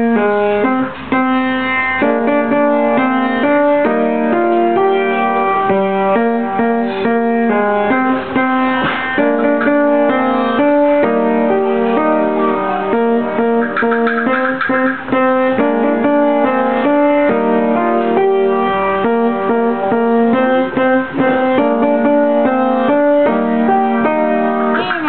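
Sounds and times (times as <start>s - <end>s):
upright piano tune: 0.0s - 25.0s.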